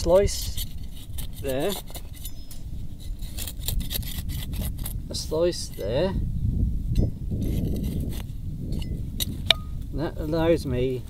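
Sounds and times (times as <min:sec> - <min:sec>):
trowel scraping stony soil: 0:00.0 - 0:06.2, 0:07.0 - 0:11.0
steady low rumble: 0:00.0 - 0:11.0.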